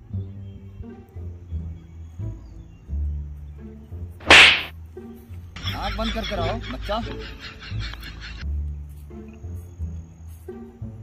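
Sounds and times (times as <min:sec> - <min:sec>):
low background music: 0:00.0 - 0:11.0
whip-like swish: 0:04.2 - 0:04.7.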